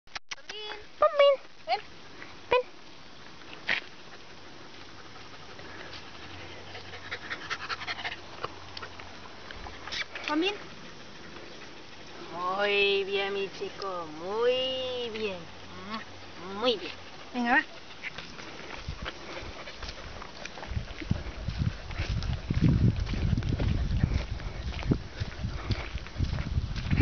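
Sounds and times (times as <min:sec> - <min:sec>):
dog panting: 0:03.9 - 0:26.2
footsteps in flip-flops: 0:18.0 - 0:27.0.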